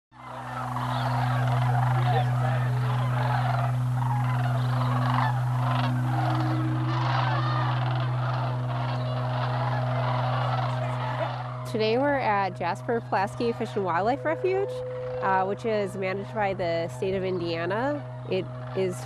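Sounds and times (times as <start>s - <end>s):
flock of cranes calling: 0.2s - 19.0s
steady low hum: 0.2s - 19.0s.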